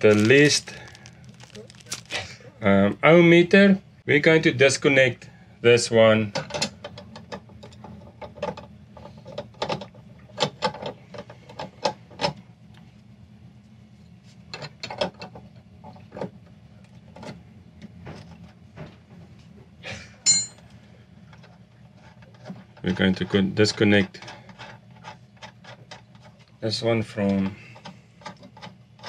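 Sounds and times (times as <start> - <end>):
steady low hum: 0.0 - 14.7
ringing metallic clink: 20.3 - 20.6.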